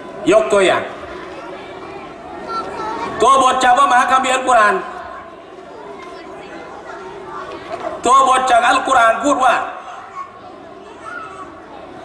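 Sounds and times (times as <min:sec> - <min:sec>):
faint background chatter: 0:00.0 - 0:12.0.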